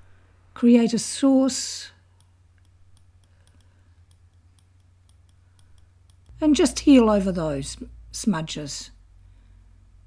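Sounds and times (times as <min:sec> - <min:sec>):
steady low hum: 0:00.0 - 0:10.0
rapid computer mouse clicks: 0:02.2 - 0:06.3.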